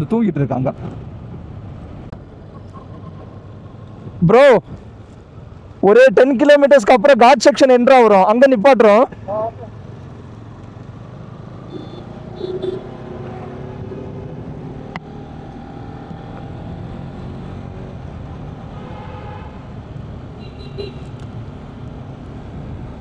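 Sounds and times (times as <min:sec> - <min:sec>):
road and wind noise: 0:00.0 - 0:23.0.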